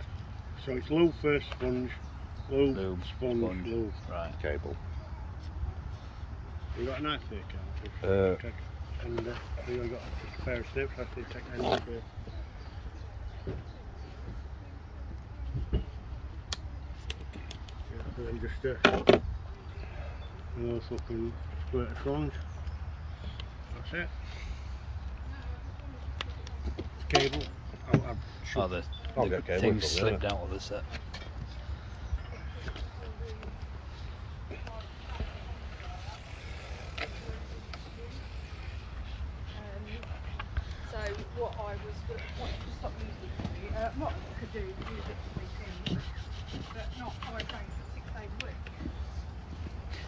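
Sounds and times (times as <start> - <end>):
faint murmured voices: 21.3 - 50.0.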